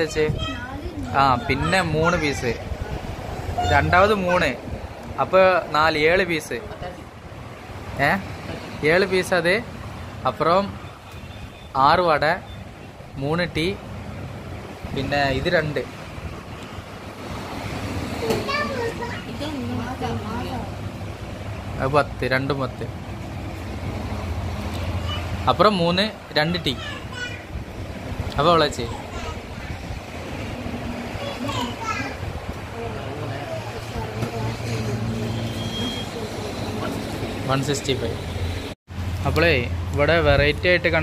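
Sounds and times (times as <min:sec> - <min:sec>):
short high beep: 0:35.3 - 0:36.2.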